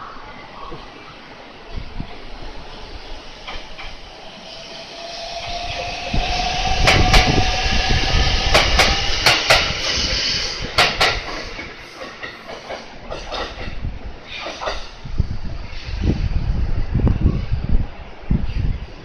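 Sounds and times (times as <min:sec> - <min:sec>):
train wheels clacking on rail joints: 0:03.4 - 0:04.0, 0:05.4 - 0:15.0
electric train motor whine: 0:03.4 - 0:10.8.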